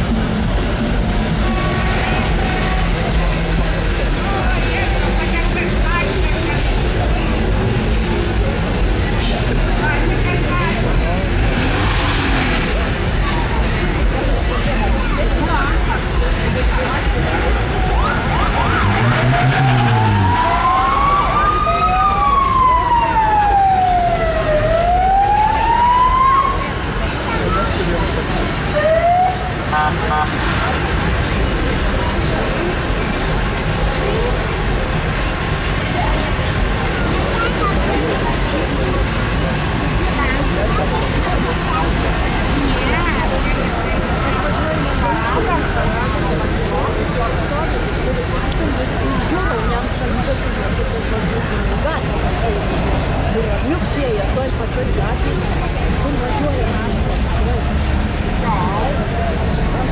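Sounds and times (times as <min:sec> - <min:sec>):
street noise of vehicles and people: 0:00.0 - 0:59.9
vehicle siren wailing: 0:17.6 - 0:27.0, 0:28.7 - 0:30.2
siren whoop: 0:17.9 - 0:26.7.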